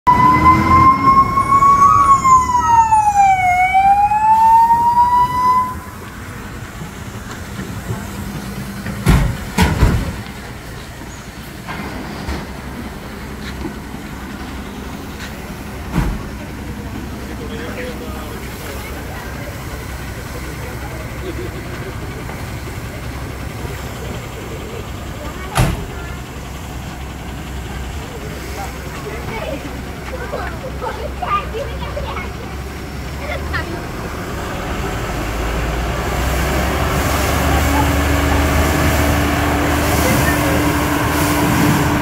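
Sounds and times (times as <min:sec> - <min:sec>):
fire engine siren wailing: 0:00.0 - 0:06.8, 0:34.4 - 0:42.0
street background: 0:00.0 - 0:42.0.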